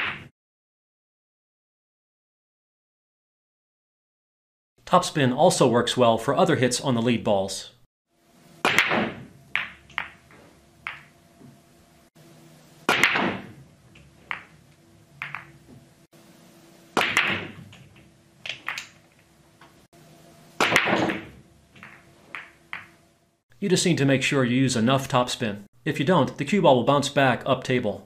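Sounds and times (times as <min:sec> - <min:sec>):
cue ball cracking into racked balls: 0:00.0 - 0:00.3, 0:08.6 - 0:11.6, 0:12.8 - 0:15.8, 0:17.0 - 0:19.8, 0:20.6 - 0:23.0
pool balls clicking: 0:08.6 - 0:11.6, 0:12.8 - 0:15.9, 0:16.9 - 0:19.9, 0:20.6 - 0:23.0.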